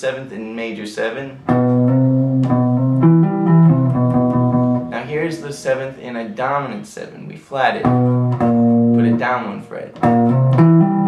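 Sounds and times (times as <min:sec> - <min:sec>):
electric guitar tapping arpeggio: 0:01.5 - 0:05.0, 0:07.8 - 0:09.4, 0:10.0 - 0:11.0.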